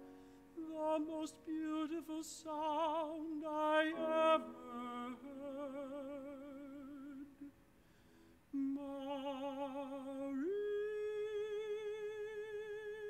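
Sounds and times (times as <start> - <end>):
male tenor singing with vibrato: 0.6 - 7.5, 8.6 - 13.0.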